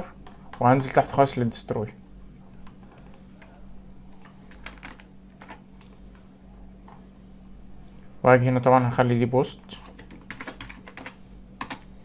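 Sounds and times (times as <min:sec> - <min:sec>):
faint steady hum: 0:00.0 - 0:12.0
keyboard keys clicking: 0:02.6 - 0:03.5, 0:04.2 - 0:06.2, 0:09.8 - 0:11.9.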